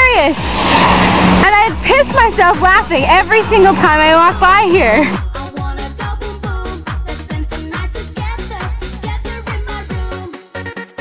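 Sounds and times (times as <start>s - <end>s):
woman speaking: 0.0s - 0.4s, 1.4s - 5.2s
car tyres hissing on wet street: 0.3s - 2.3s.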